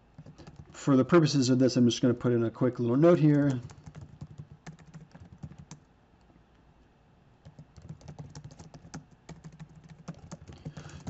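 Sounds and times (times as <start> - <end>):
typing on computer keyboard: 0.1 - 0.8, 3.4 - 5.8, 7.4 - 11.0.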